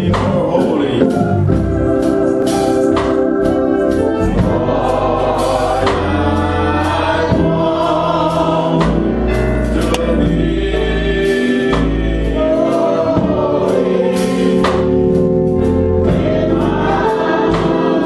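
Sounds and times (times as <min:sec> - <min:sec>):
choir and congregation singing: 0:00.0 - 0:18.0
instrumental accompaniment: 0:00.0 - 0:18.0.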